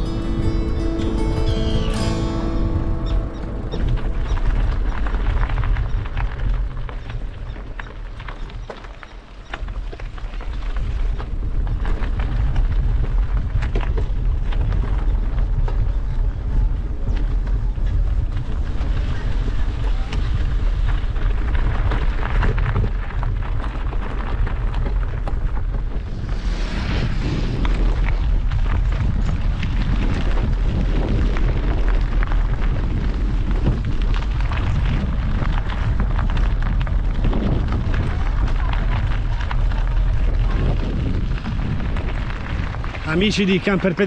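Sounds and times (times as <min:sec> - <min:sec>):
wind buffeting microphone: 0:00.0 - 0:44.0.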